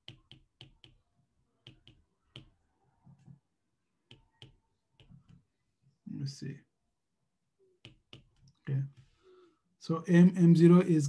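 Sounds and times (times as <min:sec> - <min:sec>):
stylus tapping on tablet screen: 0:00.0 - 0:03.4, 0:04.0 - 0:05.6, 0:07.7 - 0:09.2.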